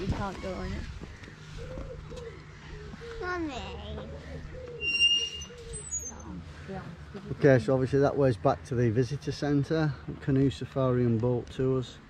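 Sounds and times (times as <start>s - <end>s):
birds cooing: 0.0s - 7.8s
bird whistling high note: 4.8s - 6.2s.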